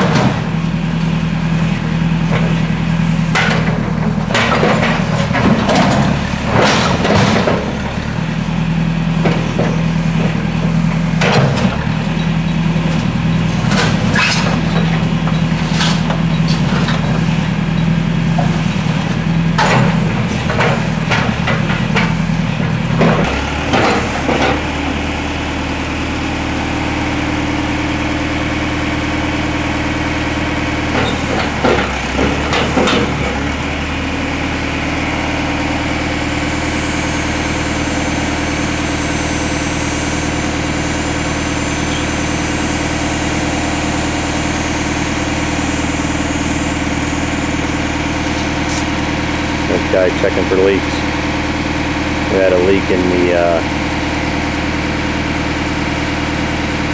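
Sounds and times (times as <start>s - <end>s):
backhoe engine running: 0.0s - 56.9s.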